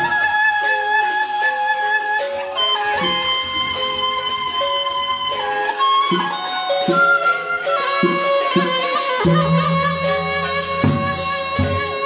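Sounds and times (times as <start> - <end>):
metallic cymbal clashes: 0.2 - 12.0
melody of long held notes: 0.7 - 12.0.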